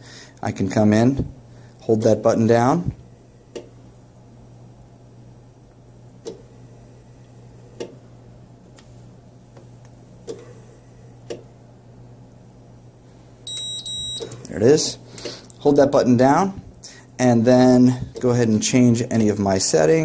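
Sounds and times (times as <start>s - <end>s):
steady low hum: 0.0s - 20.0s
ventilator valve clicks: 2.8s - 3.8s, 6.2s - 6.5s, 7.8s - 8.0s, 9.5s - 10.5s, 11.2s - 11.5s.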